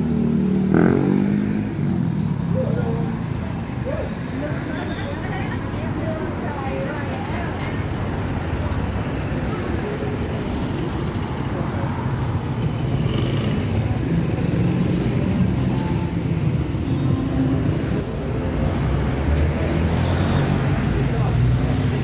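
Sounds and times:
cars and scooters on road: 0.0 - 22.0.

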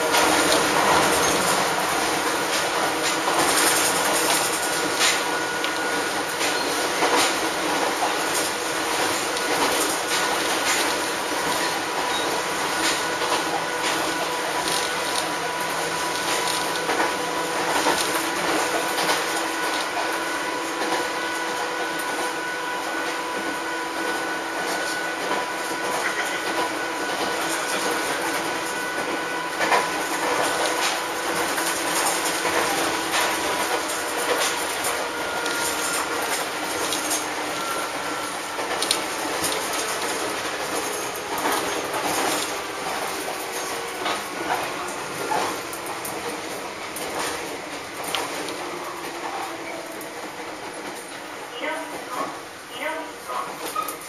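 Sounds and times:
train rumble and wheel noise: 0.0 - 54.0.

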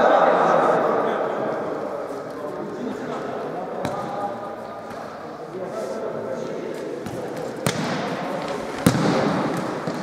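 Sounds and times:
players' voices: 0.0 - 10.0.

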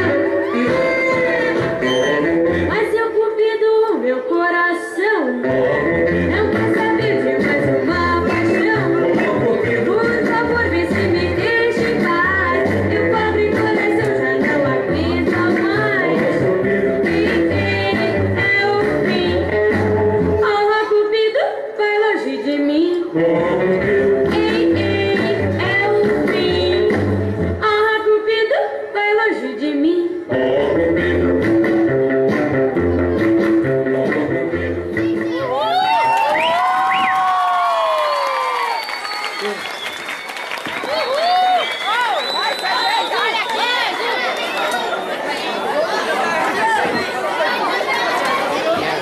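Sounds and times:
rock and roll music with guitar: 30.9 - 35.3
audience cheering: 35.5 - 46.8.

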